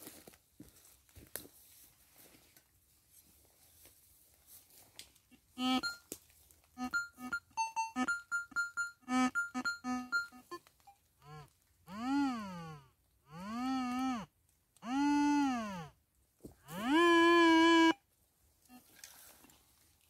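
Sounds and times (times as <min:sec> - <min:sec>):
metal detector beeps: 0:05.6 - 0:06.1, 0:06.8 - 0:11.0
metal detector buzzy tones: 0:05.6 - 0:06.1, 0:06.8 - 0:10.6, 0:16.7 - 0:18.0.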